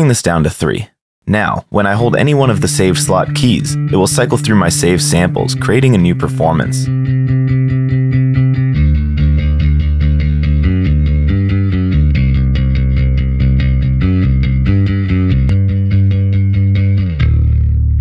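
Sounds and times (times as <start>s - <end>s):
electric bass guitar playing: 1.3s - 18.0s.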